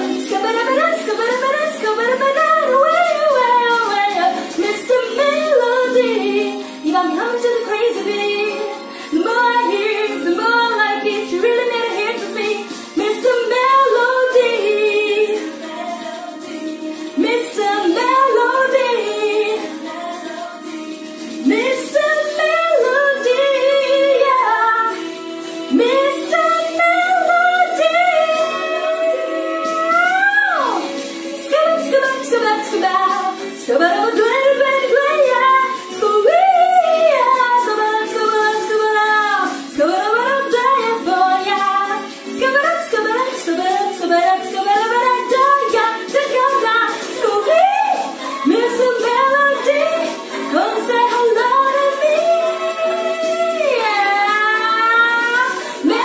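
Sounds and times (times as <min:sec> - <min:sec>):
steady musical backing: 0:00.0 - 0:56.0
woman singing with vibrato: 0:00.0 - 0:56.0.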